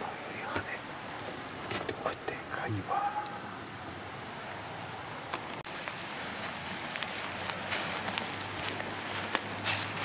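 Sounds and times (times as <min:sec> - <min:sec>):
person whispering: 0:00.0 - 0:00.9, 0:01.9 - 0:03.6.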